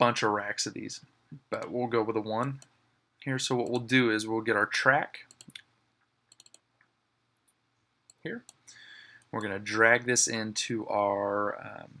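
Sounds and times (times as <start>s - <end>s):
computer mouse clicks: 5.3s - 5.7s, 6.3s - 6.7s.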